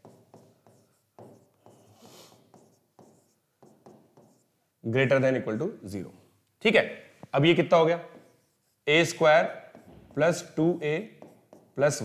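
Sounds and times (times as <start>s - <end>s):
pen scratching on writing board: 0.0s - 4.5s, 8.0s - 12.0s.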